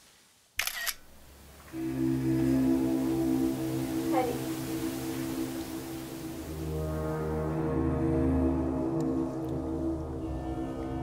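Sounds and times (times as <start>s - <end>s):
camera shutter click: 0.6s - 1.0s
low music: 1.5s - 11.0s.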